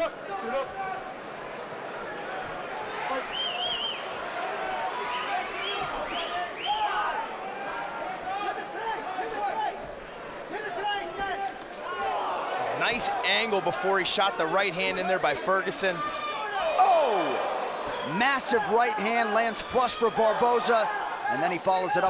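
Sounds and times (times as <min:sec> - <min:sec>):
crowd shouting and cheering: 0:00.0 - 0:22.0.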